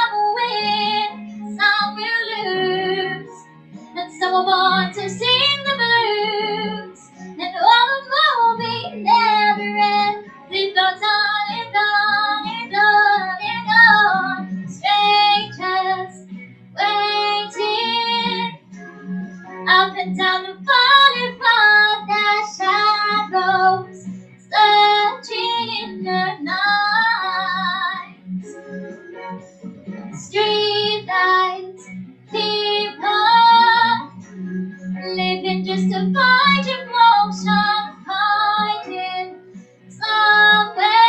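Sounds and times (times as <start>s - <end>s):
girl singing into microphone: 0.0s - 3.4s, 4.0s - 16.2s, 16.8s - 18.6s, 19.7s - 28.1s, 30.1s - 34.1s, 35.0s - 39.4s, 40.0s - 41.0s.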